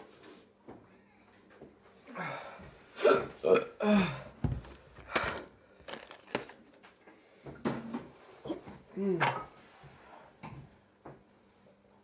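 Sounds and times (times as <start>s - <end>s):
man burping: 3.0s - 4.3s.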